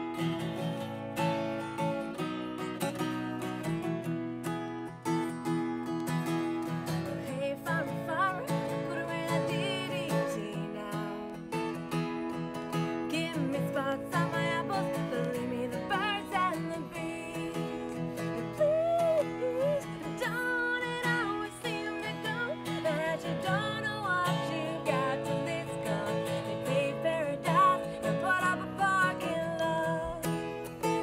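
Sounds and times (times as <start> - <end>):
acoustic guitar strumming: 0.0 - 31.0.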